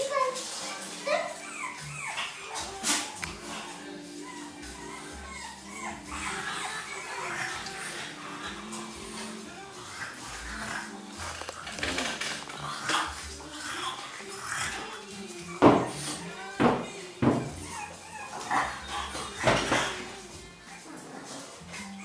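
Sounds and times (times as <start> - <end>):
background music: 0.0 - 22.0
puppies yapping: 0.0 - 22.0.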